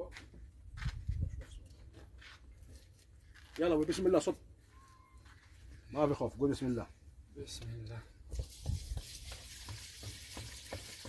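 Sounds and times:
liquid pouring with faint hiss: 8.4 - 11.0.

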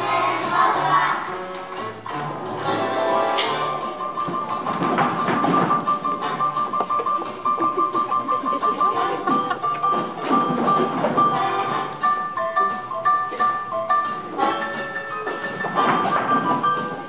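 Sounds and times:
music with steady beat: 0.0 - 17.0.

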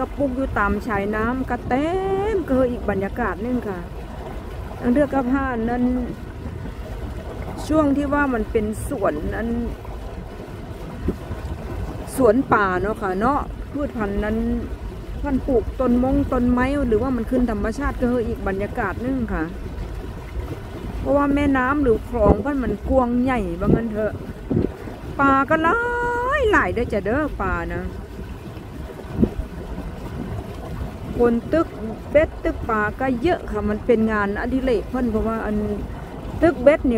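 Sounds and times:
boat engine rumble: 0.0 - 36.9
wind buffeting microphone: 0.0 - 36.9.

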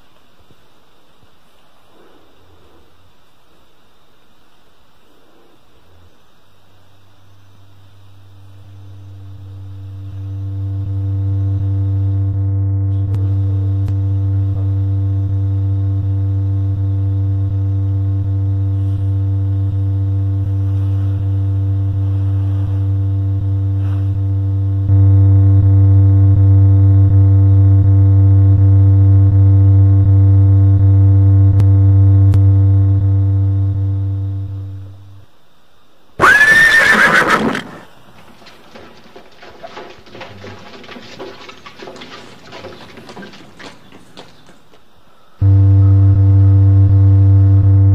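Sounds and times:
low droning tone: 8.0 - 35.4, 45.4 - 47.9.

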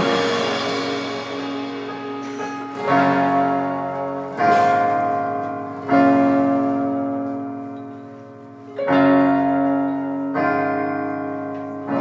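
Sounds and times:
guitar and keyboard chords ringing: 0.0 - 12.0.

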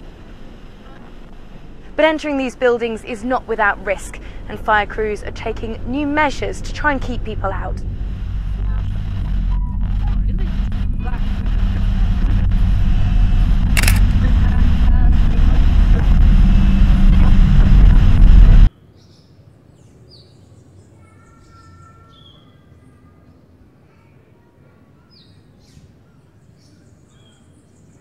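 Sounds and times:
low rumbling noise: 0.0 - 18.7.

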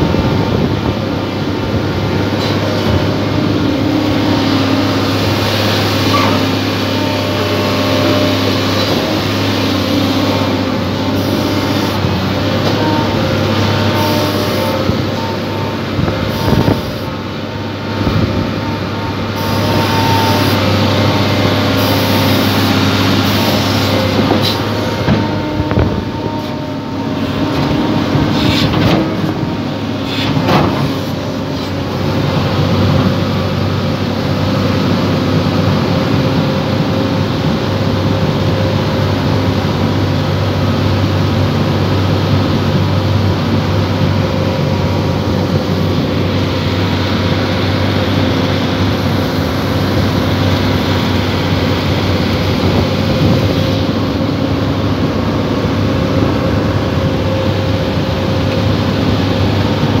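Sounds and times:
diesel engine running: 0.0 - 60.0.

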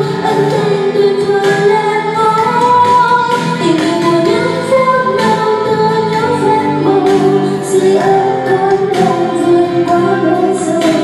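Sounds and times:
backing music: 0.0 - 11.0
woman singing pop ballad: 0.0 - 11.0.

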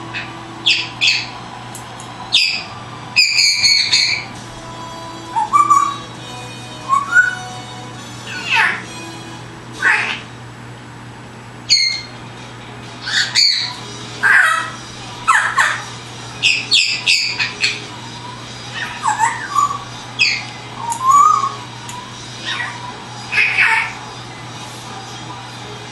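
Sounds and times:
parrot chirping and squawking: 0.1 - 1.4, 2.3 - 10.4, 11.7 - 12.2, 13.0 - 24.1
parrot warbling whistle: 0.6 - 1.3, 2.3 - 4.3, 5.3 - 6.1, 6.8 - 7.6, 8.3 - 8.9, 11.7 - 12.1, 13.0 - 15.8, 18.7 - 21.6.

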